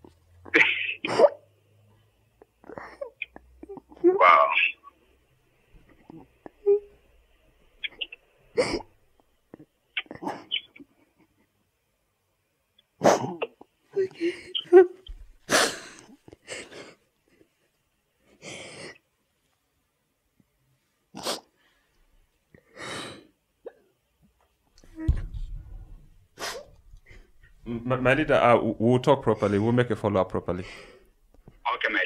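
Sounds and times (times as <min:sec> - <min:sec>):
woman crying: 0:13.9 - 0:15.1
sniffling gasp: 0:15.5 - 0:17.0, 0:26.4 - 0:27.3.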